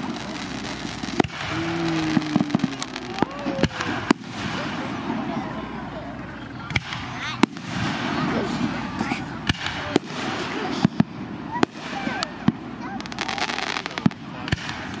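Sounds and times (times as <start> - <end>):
firework shells bursting: 0.0 - 4.8
firework crackles: 0.0 - 15.0
people talking: 0.0 - 15.0.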